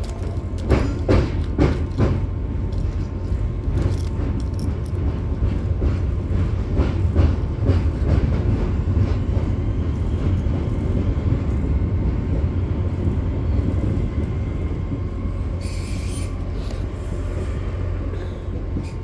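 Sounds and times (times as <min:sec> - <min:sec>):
train low rumble: 0:00.0 - 0:19.0.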